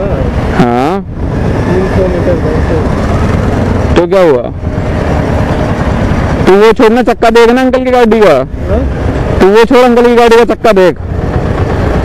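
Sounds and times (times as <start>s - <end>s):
motorcycle engine rumble: 0.0s - 12.0s.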